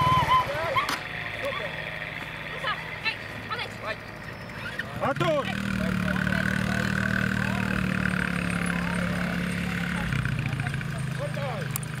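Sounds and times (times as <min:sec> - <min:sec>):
distant voices: 0:00.0 - 0:12.0
quad bike engine running: 0:00.0 - 0:12.0.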